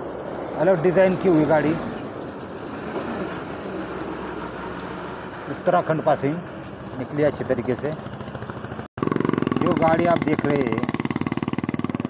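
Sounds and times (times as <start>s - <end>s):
truck passing close by: 0.0s - 12.0s.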